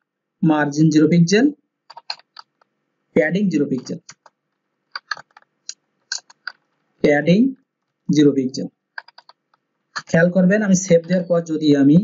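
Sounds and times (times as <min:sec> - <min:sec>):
man speaking: 0:00.4 - 0:01.6, 0:03.2 - 0:04.2, 0:07.0 - 0:08.7, 0:10.0 - 0:12.0
keyboard keystrokes: 0:01.9 - 0:02.6, 0:05.0 - 0:05.5, 0:09.0 - 0:09.4.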